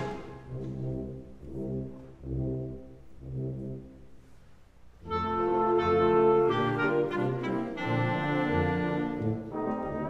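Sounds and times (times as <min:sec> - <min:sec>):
low brass sustained chords: 0:00.0 - 0:10.0.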